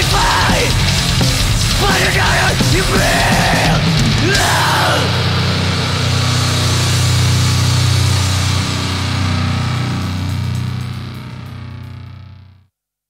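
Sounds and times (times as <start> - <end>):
distorted guitar chord ringing: 3.8 - 12.6.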